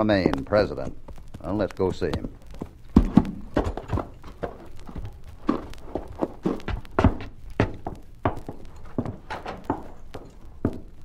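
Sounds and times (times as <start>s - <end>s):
heavy thudding footsteps: 0.0s - 11.0s.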